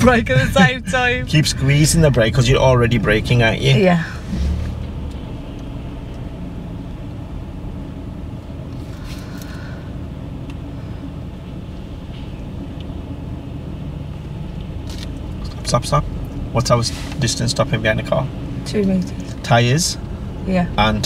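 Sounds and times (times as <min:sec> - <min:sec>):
car engine and tyres rumble: 0:00.0 - 0:21.0.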